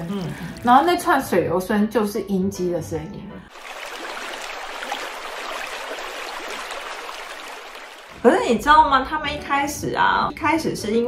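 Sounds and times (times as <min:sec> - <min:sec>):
recorded flowing water: 0:03.5 - 0:08.3.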